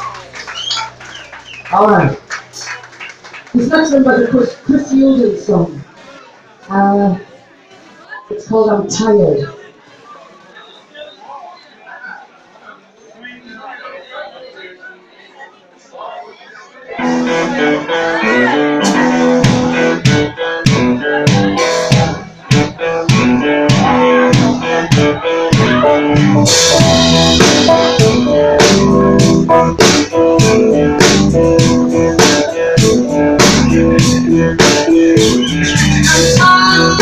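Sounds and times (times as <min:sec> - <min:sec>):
bass guitar: 0:17.0 - 0:37.0
electric guitar: 0:17.0 - 0:37.0
drum kit beat: 0:17.1 - 0:37.0.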